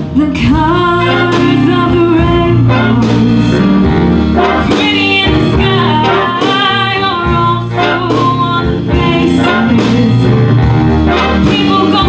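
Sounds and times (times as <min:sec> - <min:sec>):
woman singing a ballad: 0:00.0 - 0:03.9, 0:04.6 - 0:10.5, 0:11.4 - 0:12.0
jazz big band playing: 0:00.0 - 0:12.0.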